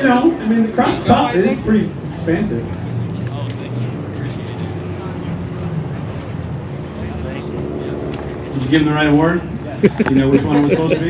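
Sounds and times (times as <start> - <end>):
crowd talking: 0.0 - 11.0
engine humming: 0.0 - 11.0.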